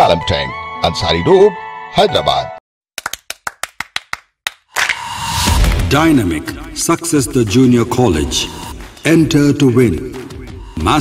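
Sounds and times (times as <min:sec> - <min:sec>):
sharp clap-like clicks: 0:03.0 - 0:05.8.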